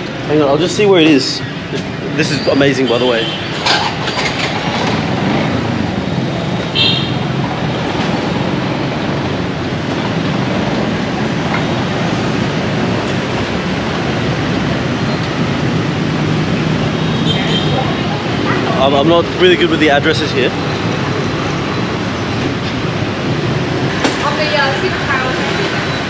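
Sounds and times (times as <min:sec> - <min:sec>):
busy street traffic: 0:00.0 - 0:26.0
motorbikes passing: 0:00.0 - 0:26.0.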